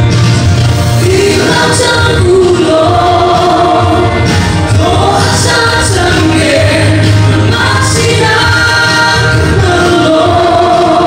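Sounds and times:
music with steady bass line: 0.0s - 11.0s
woman singing into microphone: 1.0s - 11.0s.

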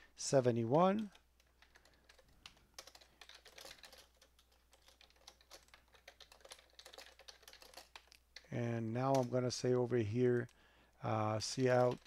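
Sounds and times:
computer keyboard typing: 1.0s - 9.8s, 11.4s - 12.0s.

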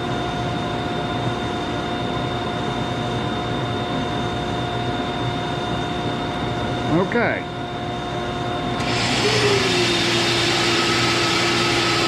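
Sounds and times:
woodshop machinery humming and whining: 8.7s - 12.0s.

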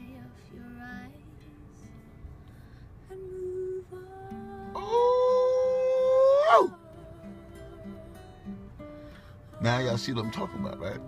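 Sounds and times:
faint acoustic guitar: 0.0s - 11.0s
woman singing a high note: 3.1s - 8.5s.

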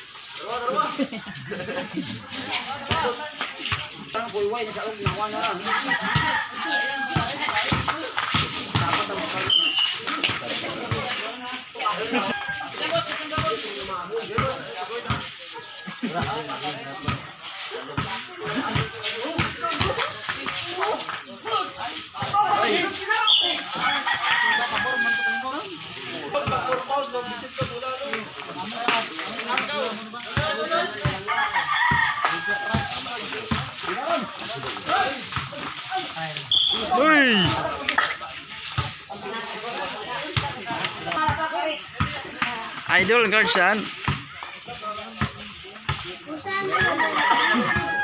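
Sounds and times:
voices of players and onlookers: 0.0s - 48.0s
rooster crowing: 5.6s - 7.4s, 23.7s - 25.6s, 31.3s - 33.0s, 46.7s - 48.0s
people shouting: 36.0s - 38.0s.

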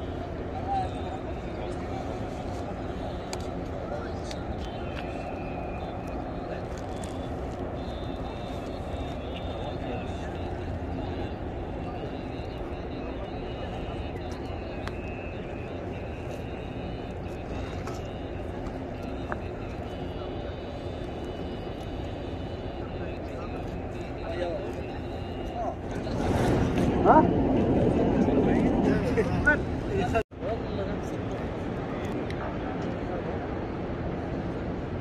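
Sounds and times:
people talking indistinctly: 0.0s - 31.2s
distant traffic hum: 0.0s - 35.0s
low outdoor rumble: 0.0s - 35.0s.

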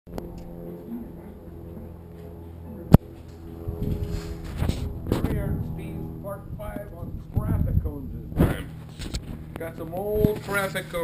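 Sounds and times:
low hum: 0.1s - 11.0s.

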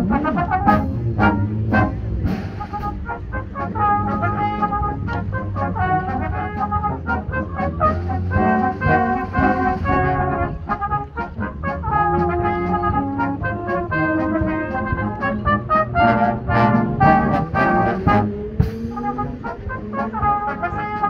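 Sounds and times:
brass band playing a march: 0.0s - 21.0s
drum strokes: 0.0s - 21.0s.

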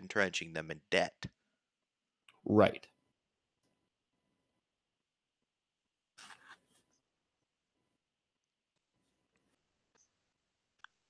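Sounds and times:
rustling scrape: 6.2s - 7.0s.

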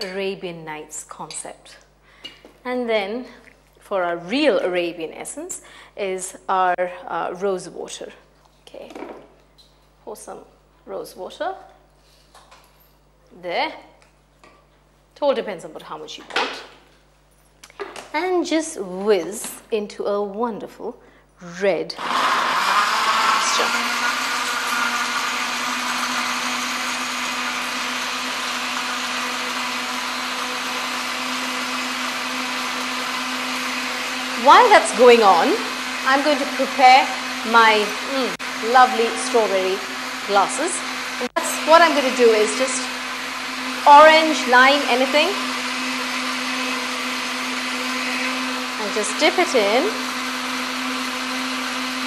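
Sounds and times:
electric blender running: 22.0s - 52.0s.

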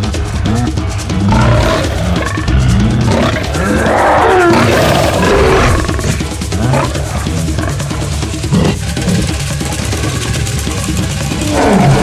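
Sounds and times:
lion roaring and growling: 0.4s - 9.5s, 11.3s - 12.0s.

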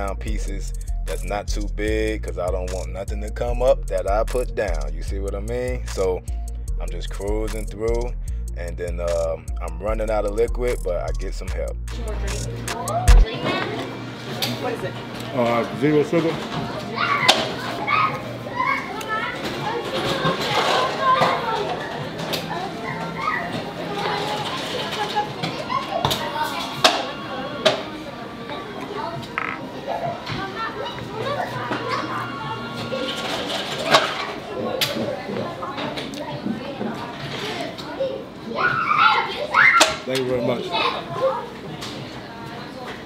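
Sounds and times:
children talking and playing: 0.0s - 43.0s
chatter of voices: 6.8s - 43.0s
child's high voice: 16.9s - 26.7s, 37.9s - 40.0s.

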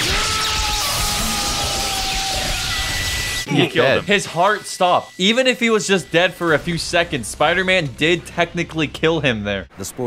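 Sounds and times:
electrical crackle and buzz: 0.0s - 5.4s
sustained tones: 2.7s - 9.0s
high steady tone: 3.4s - 7.9s.

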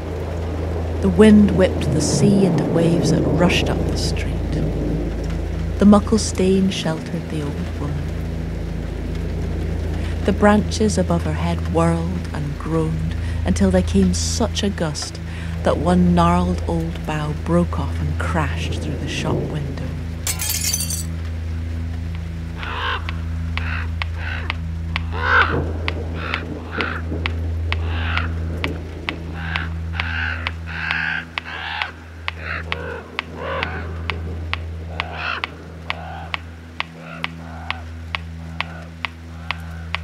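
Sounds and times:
glass shattering: 20.3s - 21.1s
crow cawing and croaking: 22.6s - 27.0s, 27.8s - 28.4s, 29.4s - 34.2s, 34.9s - 40.0s.

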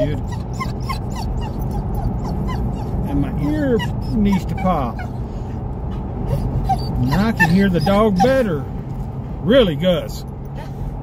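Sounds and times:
dog whimpering: 0.0s - 8.7s
car cabin road and engine rumble: 0.0s - 11.0s.

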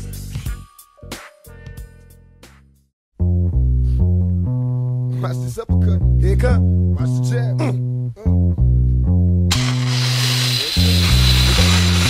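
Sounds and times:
deep bass line: 1.7s - 12.0s.

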